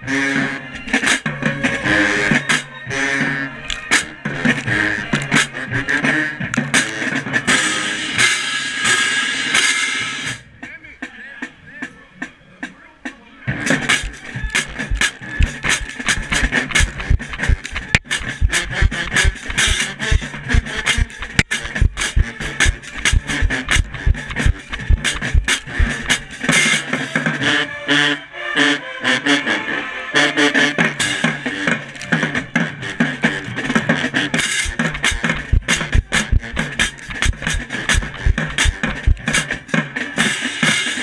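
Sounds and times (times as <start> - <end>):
drumline: 13.5 - 27.5, 30.9 - 41.0
bass drums: 13.7 - 26.6, 34.4 - 39.7
brass playing: 13.9 - 26.4.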